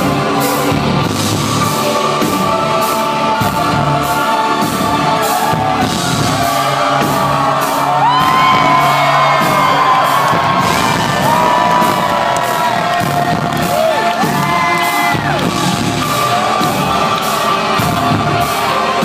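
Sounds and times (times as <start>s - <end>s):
synth-rock band playing live: 0.0s - 19.0s
audience whooping: 6.0s - 15.8s.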